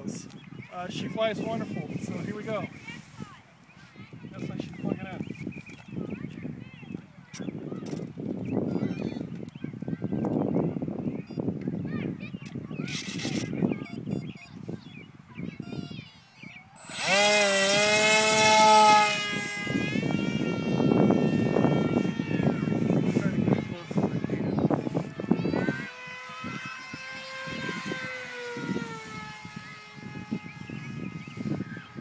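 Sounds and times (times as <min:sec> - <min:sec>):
electric motor whining: 0:12.9 - 0:14.1, 0:15.7 - 0:32.0.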